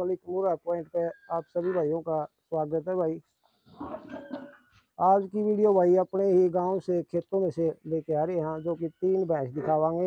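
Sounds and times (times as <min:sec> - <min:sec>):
speech: 0:00.0 - 0:03.2, 0:05.0 - 0:10.0.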